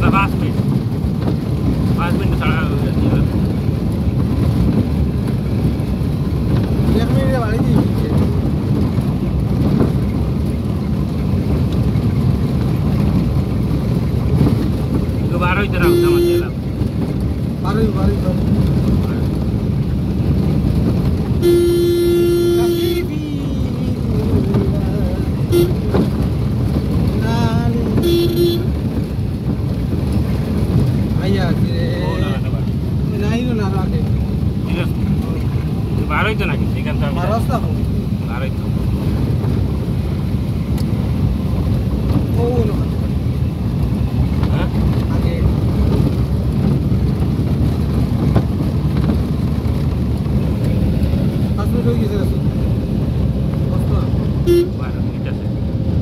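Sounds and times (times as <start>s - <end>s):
vehicle rumble and road noise: 0.0s - 56.0s
vehicle horn honking: 15.8s - 16.6s, 21.4s - 23.1s, 25.5s - 25.9s, 28.0s - 28.7s, 54.4s - 54.9s.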